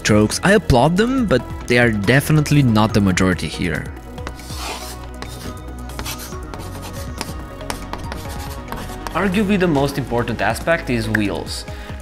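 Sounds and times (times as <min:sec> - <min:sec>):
background music: 0:00.0 - 0:12.0
chalk scratching on blackboard: 0:04.2 - 0:09.2.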